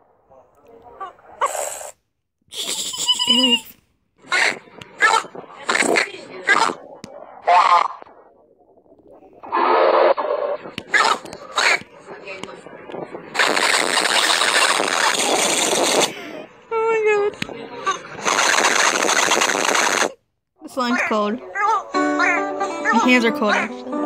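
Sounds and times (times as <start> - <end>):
loud harsh distorted noise: 4.2 - 16.6, 17.9 - 20.2.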